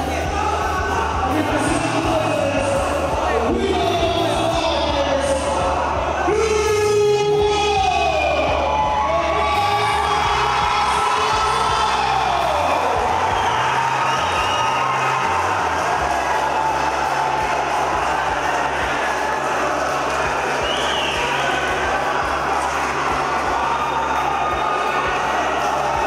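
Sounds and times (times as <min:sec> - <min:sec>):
crowd cheering and shouting: 0:00.0 - 0:26.0
music with low bass line: 0:00.0 - 0:26.0.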